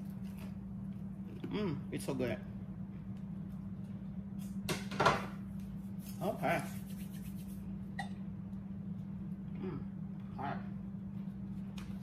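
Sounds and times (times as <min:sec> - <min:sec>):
steady low hum: 0:00.0 - 0:12.0
woman humming: 0:09.6 - 0:10.0.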